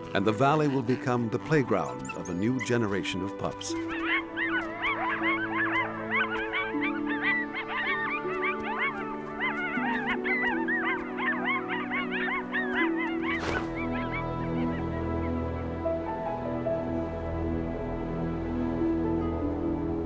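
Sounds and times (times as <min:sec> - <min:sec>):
background music: 0:00.0 - 0:20.0
coyotes yip-howling: 0:00.2 - 0:16.2.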